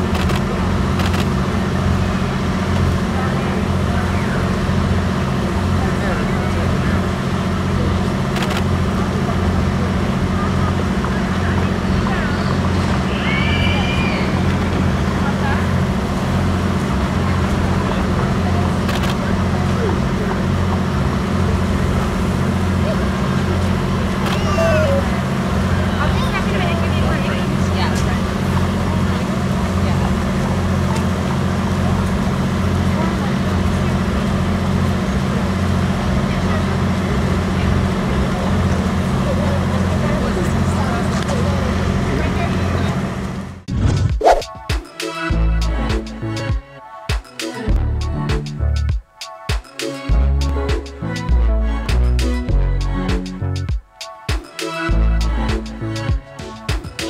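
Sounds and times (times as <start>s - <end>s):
crowd chatter: 0.0s - 43.7s, 44.4s - 46.6s, 47.2s - 57.0s
low engine-like hum: 0.0s - 44.4s, 45.3s - 46.7s, 47.5s - 48.9s, 50.0s - 53.7s, 54.9s - 57.0s.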